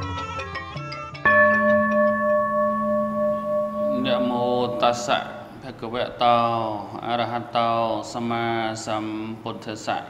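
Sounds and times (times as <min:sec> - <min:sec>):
singing bowl ringing: 0:01.3 - 0:05.6.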